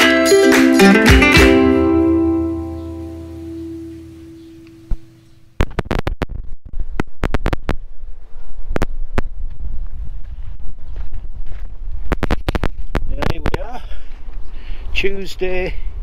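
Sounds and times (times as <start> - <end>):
acoustic guitar music: 0.0 - 5.4
wind buffeting microphone: 5.8 - 16.0.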